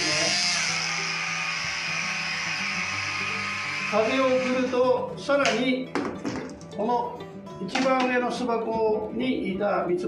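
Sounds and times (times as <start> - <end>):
electric blower whirring: 0.0 - 4.8
guitar music: 0.0 - 10.0.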